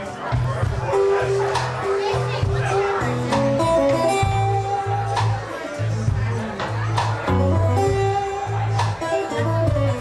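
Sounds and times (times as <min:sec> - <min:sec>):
live blues guitar music: 0:00.0 - 0:10.0.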